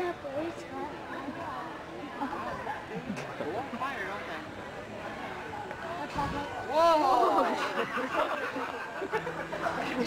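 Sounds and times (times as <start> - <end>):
indistinct overlapping talking: 0.0 - 10.0.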